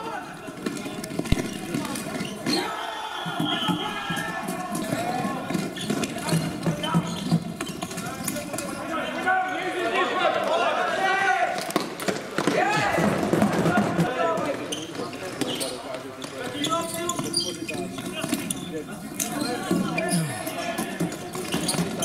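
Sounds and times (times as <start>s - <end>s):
players calling out: 16.5s - 21.1s.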